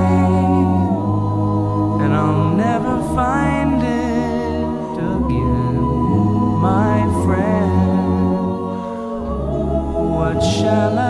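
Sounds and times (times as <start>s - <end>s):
voices singing and humming: 0.0s - 11.0s.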